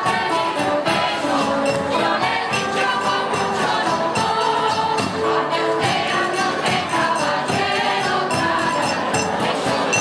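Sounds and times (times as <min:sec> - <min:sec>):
percussion beat: 0:00.0 - 0:10.0
strummed guitars: 0:00.0 - 0:10.0
women singing in chorus: 0:00.0 - 0:10.0.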